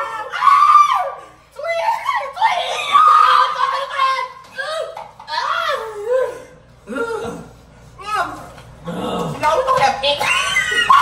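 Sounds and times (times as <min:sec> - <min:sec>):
people screaming: 0:02.2 - 0:06.3.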